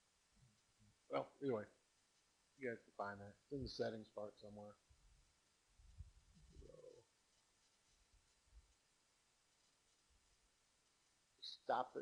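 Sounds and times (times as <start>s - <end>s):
faint low sound: 0.0s - 12.0s.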